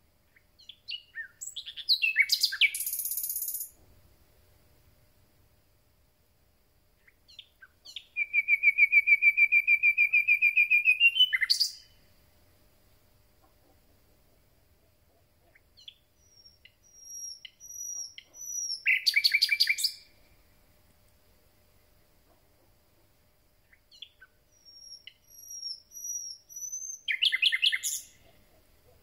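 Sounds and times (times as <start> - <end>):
nightingale singing: 0.2 - 3.8, 7.0 - 12.1, 15.4 - 20.3, 23.6 - 29.0.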